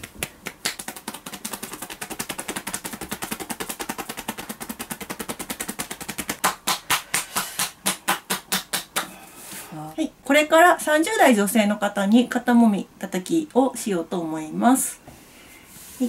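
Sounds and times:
hands tapping on body: 0:00.0 - 0:09.2.

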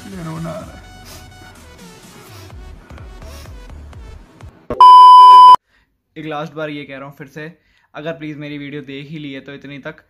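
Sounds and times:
high-pitched electronic beep: 0:04.8 - 0:05.6.

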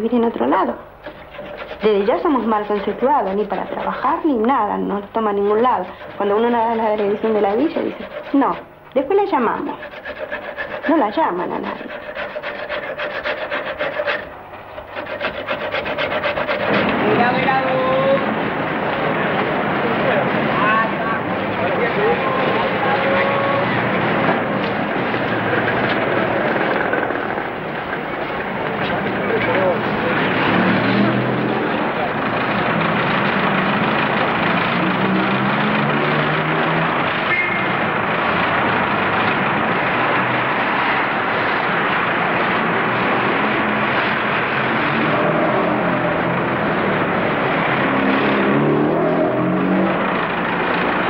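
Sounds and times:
steady traffic: 0:00.0 - 0:51.0
indistinct voices: 0:01.4 - 0:27.6.

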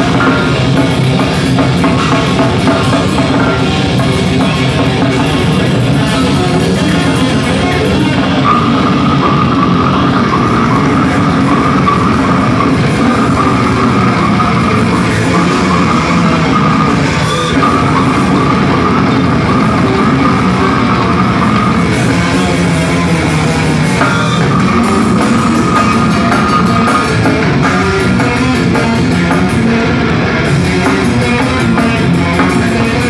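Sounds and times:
heavy metal band playing live: 0:00.0 - 0:33.0.

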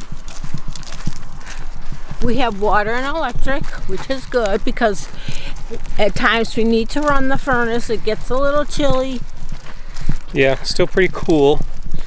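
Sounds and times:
footsteps on paved road: 0:00.0 - 0:12.0.

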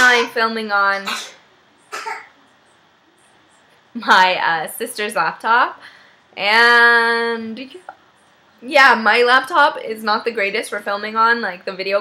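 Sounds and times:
woman coughing: 0:01.0 - 0:02.3.

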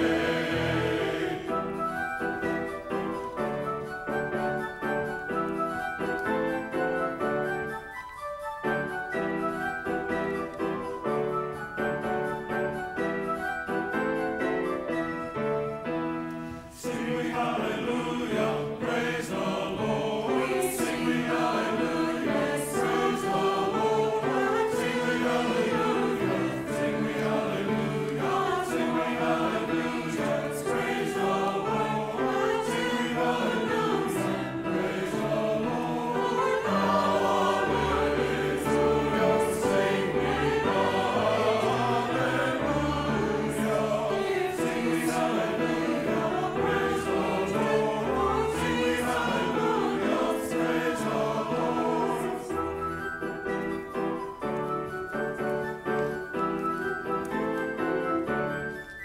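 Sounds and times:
choir singing in harmony: 0:00.0 - 0:07.8, 0:08.6 - 0:58.8
digital piano: 0:00.0 - 0:59.0.

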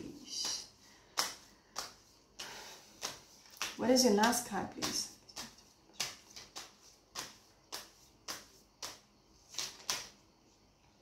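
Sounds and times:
cards being shuffled: 0:00.4 - 0:10.2.

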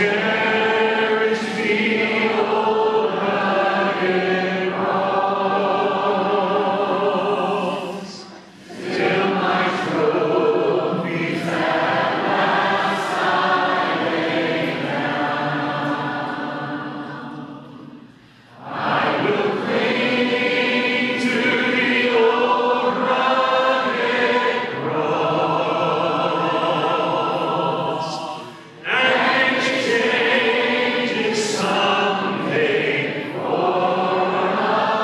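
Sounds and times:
choir singing worship song: 0:00.0 - 0:35.0.

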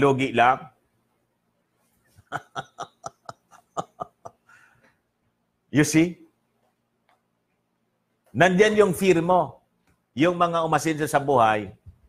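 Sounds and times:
man speaking: 0:00.0 - 0:00.8, 0:05.7 - 0:06.3, 0:08.3 - 0:09.6, 0:10.2 - 0:11.8.

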